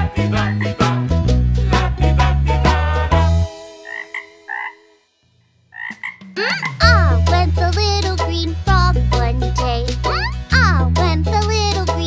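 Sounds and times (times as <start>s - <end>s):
bouncy children's song: 0.0s - 4.8s, 5.9s - 12.0s
frog croaks: 3.8s - 4.8s, 5.7s - 6.6s.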